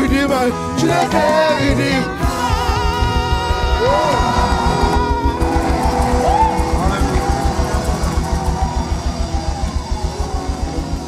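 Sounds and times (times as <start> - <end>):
live band playing upbeat groove: 0.0 - 10.1.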